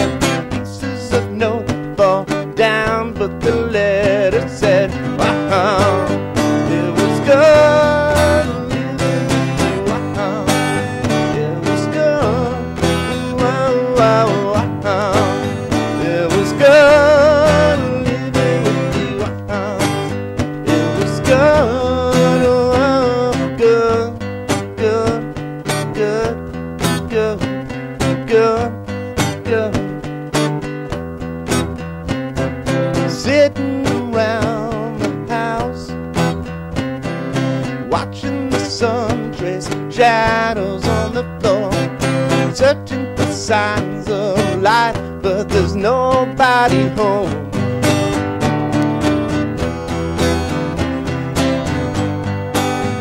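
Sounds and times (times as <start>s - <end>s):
man singing wordless lines: 0.0s - 30.9s, 31.7s - 53.0s
acoustic guitar strumming: 0.0s - 53.0s.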